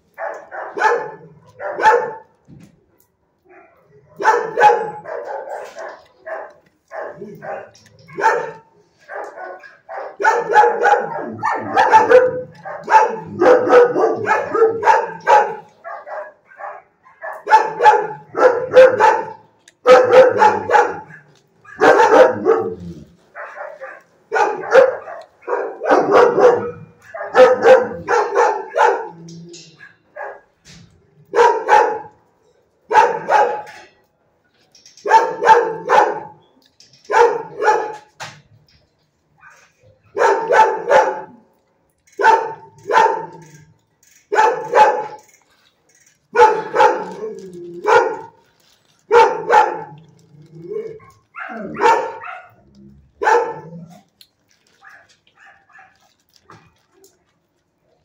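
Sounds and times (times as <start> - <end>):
dogs barking: 0.1 - 2.4, 3.5 - 30.6, 31.2 - 32.2, 32.9 - 34.0, 35.0 - 36.4, 37.0 - 38.2, 39.4 - 41.5, 42.1 - 43.6, 44.3 - 45.3, 46.3 - 50.0, 50.7 - 54.1, 54.8 - 56.8.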